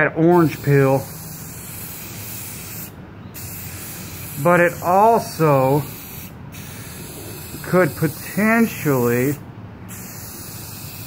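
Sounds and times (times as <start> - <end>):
aerosol can spraying: 0.4 - 11.0.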